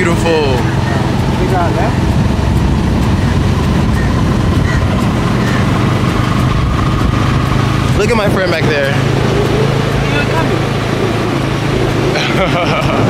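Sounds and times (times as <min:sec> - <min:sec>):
motorcycle engine hum: 0:00.0 - 0:13.0
wind rumble on microphone: 0:00.0 - 0:13.0
person laughing: 0:12.1 - 0:13.0.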